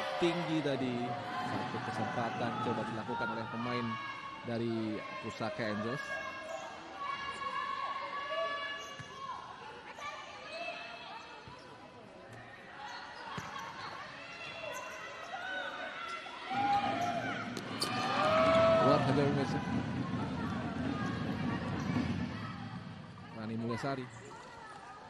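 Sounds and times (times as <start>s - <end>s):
voices echoing in a hall: 0.0s - 25.0s.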